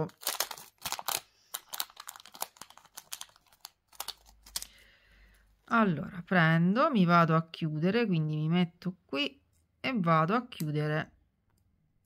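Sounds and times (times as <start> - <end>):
rustling and crinkling: 0.1 - 4.8.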